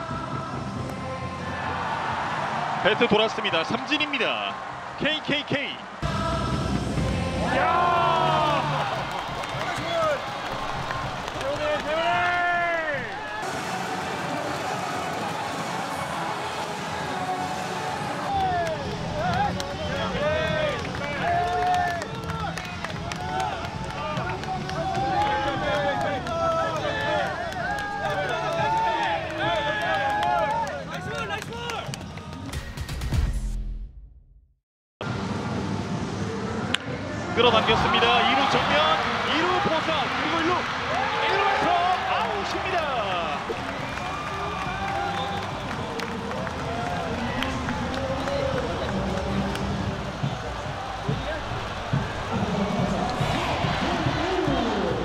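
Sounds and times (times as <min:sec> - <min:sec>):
people shouting and cheering: 0:00.0 - 0:32.4, 0:36.7 - 0:55.0
background music with bass line: 0:43.5 - 0:55.0.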